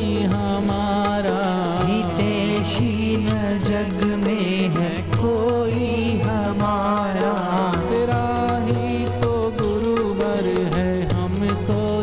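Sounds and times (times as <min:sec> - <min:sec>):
instrumental accompaniment: 0:00.0 - 0:12.0
man singing devotional song: 0:00.0 - 0:12.0
steady percussion beat: 0:00.0 - 0:12.0.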